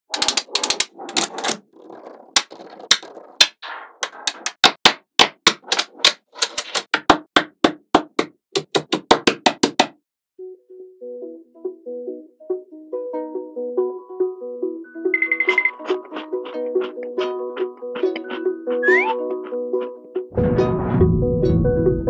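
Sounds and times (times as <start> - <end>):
magnetic balls clicking together: 0.1 - 4.8.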